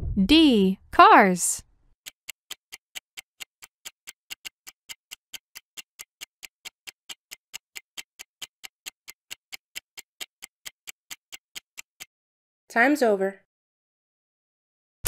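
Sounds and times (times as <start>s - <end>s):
timer ticking: 2.0s - 12.1s.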